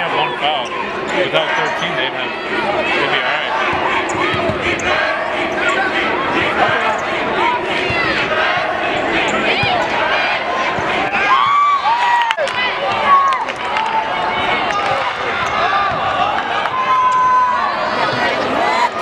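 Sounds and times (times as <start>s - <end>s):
crowd noise: 0.0s - 19.0s
voices shouting: 0.0s - 19.0s.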